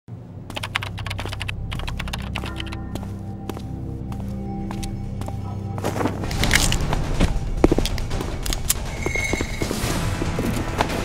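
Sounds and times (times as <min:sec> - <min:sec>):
low steady drone: 0:00.1 - 0:11.0
rapid keyboard typing: 0:00.5 - 0:02.9.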